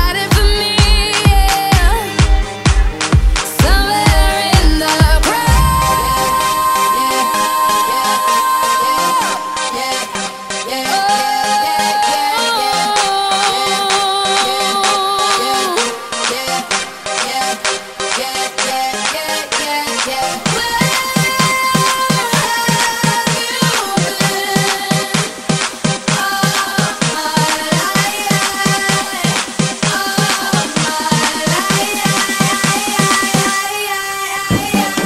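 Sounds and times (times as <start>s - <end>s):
four-to-the-floor kick drum: 0.0s - 6.7s
electronic dance synth lines: 0.0s - 35.0s.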